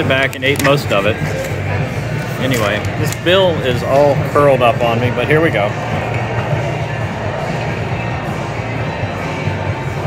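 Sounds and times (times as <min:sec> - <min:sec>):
background music: 0:00.0 - 0:10.0
restaurant crowd hubbub: 0:00.0 - 0:10.0.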